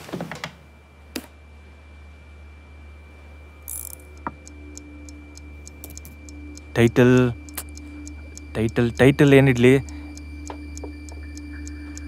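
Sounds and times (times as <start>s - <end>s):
steady low hum: 0.6s - 12.0s
thin high tone: 3.6s - 12.0s
scattered clicks: 3.7s - 12.0s
soft clock-like ticking: 4.1s - 12.0s.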